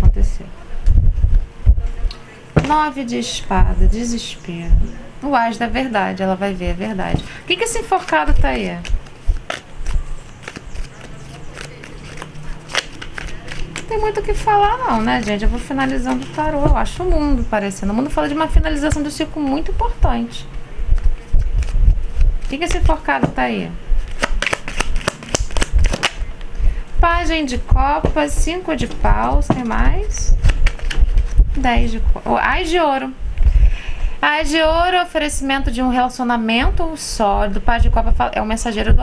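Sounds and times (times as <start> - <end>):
cards being shuffled: 7.2 - 16.8, 21.0 - 23.0, 24.0 - 26.3, 28.9 - 31.6.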